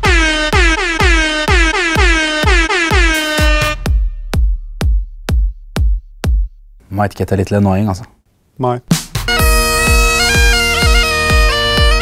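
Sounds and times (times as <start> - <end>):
air horn honks: 0.0 - 4.2, 9.3 - 12.0
electronic dance music with kick drum: 0.0 - 6.7, 8.9 - 12.0.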